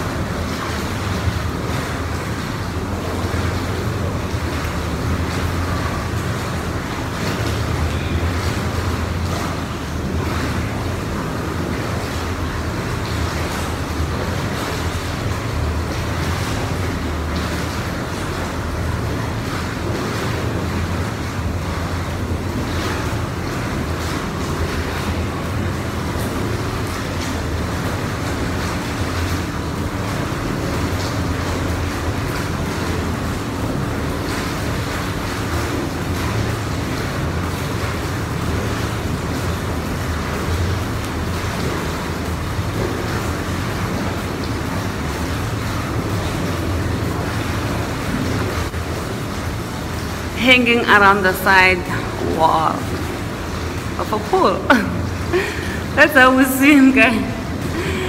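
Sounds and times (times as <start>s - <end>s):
water rushing in spa pool: 0.0s - 58.0s.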